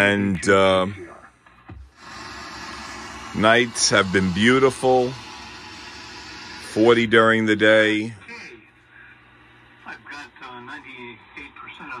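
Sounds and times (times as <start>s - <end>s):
radio static hiss: 2.3s - 12.0s.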